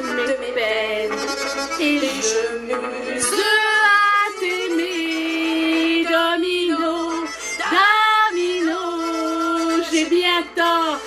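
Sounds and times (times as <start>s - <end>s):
woman singing: 0.0s - 11.0s.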